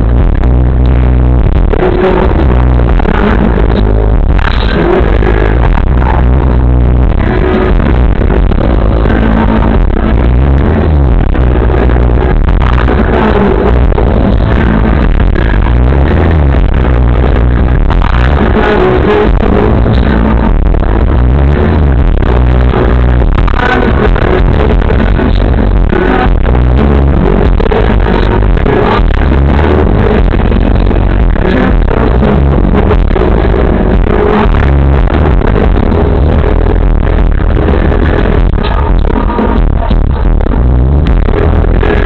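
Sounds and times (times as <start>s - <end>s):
live rock band and singer: 0.0s - 42.0s.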